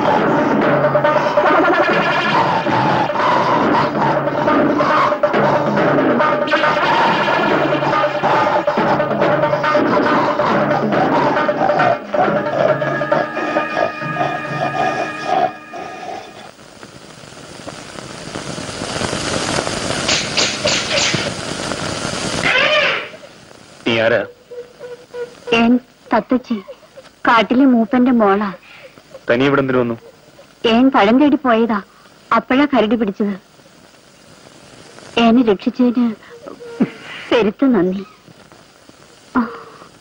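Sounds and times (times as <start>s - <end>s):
rushing noise: 0.0s - 24.2s
faint hiss: 0.0s - 40.0s.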